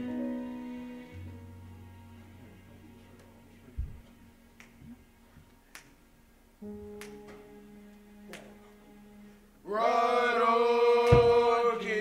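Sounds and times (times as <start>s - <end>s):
low thump: 11.1s - 11.4s.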